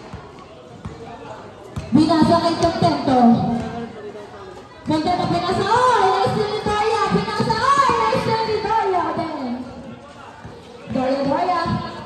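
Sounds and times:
basketball bouncing on court: 0.0 - 3.9, 4.8 - 9.3, 10.4 - 12.0
faint voices: 0.0 - 12.0.

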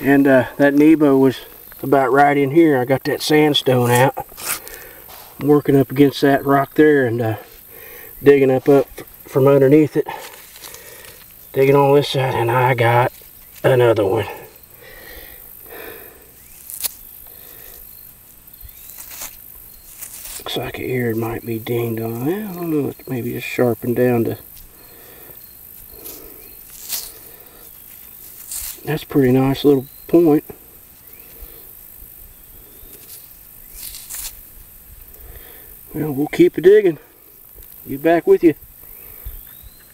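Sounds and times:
steady high hiss: 0.0 - 39.9
fingers rubbing dirt off stone: 3.7 - 5.4, 18.7 - 23.1, 25.8 - 29.9, 32.9 - 34.5.

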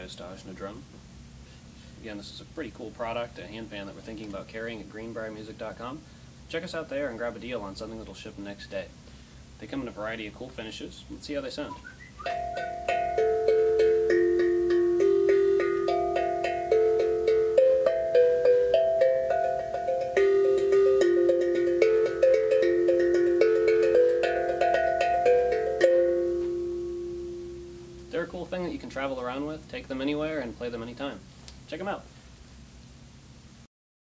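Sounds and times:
steel tongue drum melody: 11.8 - 29.5.

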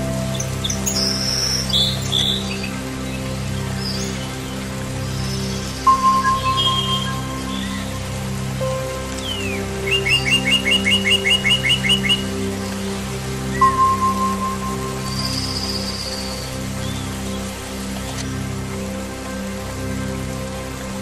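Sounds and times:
ambient music with low notes: 0.0 - 21.0
songbirds singing: 0.0 - 21.0.

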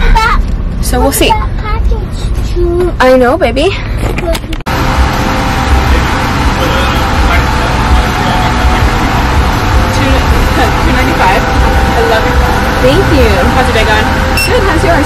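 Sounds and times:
pickup engine idling: 4.7 - 15.0.

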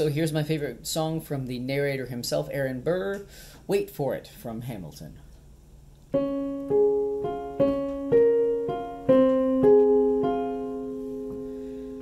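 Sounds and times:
piano notes: 6.1 - 12.0.

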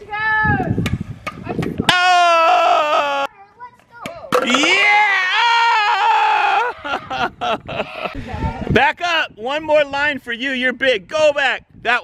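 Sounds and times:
person squealing excitedly: 1.9 - 3.3, 4.4 - 7.2.

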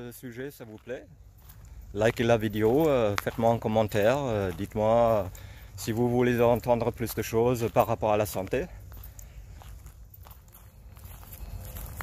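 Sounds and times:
footsteps on a woodland trail: 0.0 - 12.0
low steady rumble: 0.0 - 12.0.

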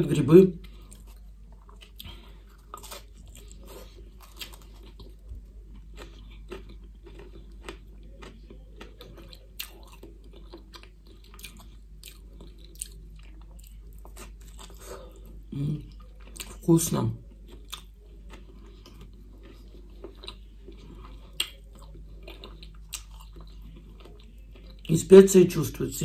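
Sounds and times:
person chewing crunchy food: 0.6 - 25.0.

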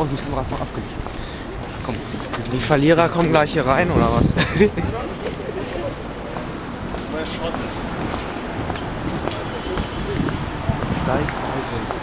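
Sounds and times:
street background din: 0.0 - 12.0.

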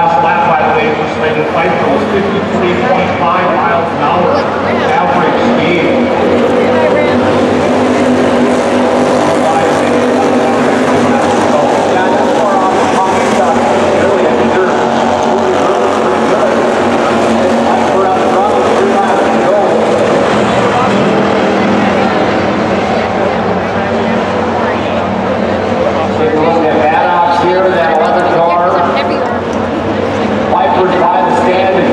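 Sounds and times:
race car engines droning: 0.0 - 31.9.

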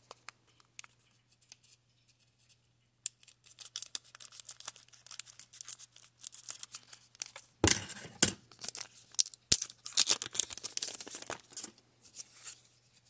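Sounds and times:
foil pack crinkling: 3.4 - 7.5, 8.5 - 11.7.

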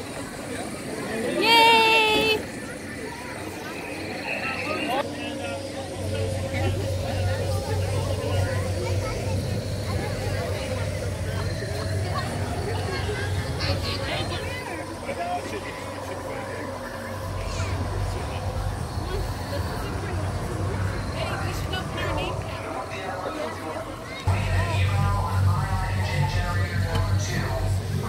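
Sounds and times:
constant mid-pitched tone: 0.0 - 28.0
people talking indistinctly: 0.0 - 28.0
people's voices: 0.0 - 28.0
steady low hum: 0.0 - 28.0
steady low rumble: 5.0 - 28.0.

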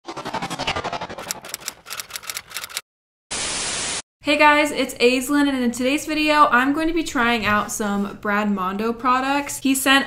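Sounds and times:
static hiss: 3.4 - 4.0.

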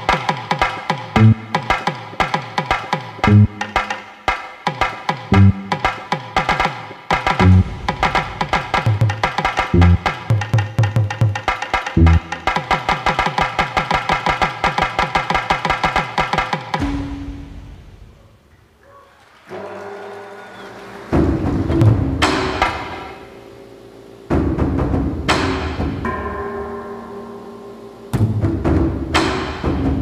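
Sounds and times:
repeated pitched percussive notes: 1.1 - 2.0, 3.2 - 4.5, 5.2 - 6.6, 7.2 - 13.3
heavy drum hits: 7.4 - 12.8.

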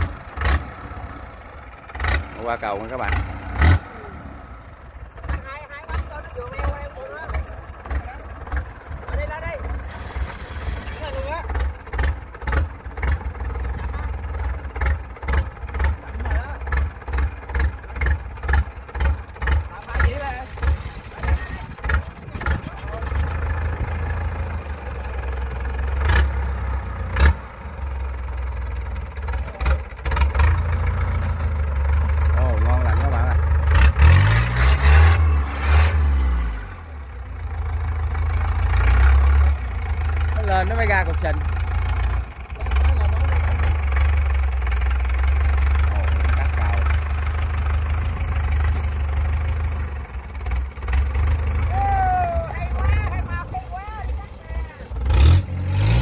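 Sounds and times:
diesel engine under load: 0.0 - 56.0.

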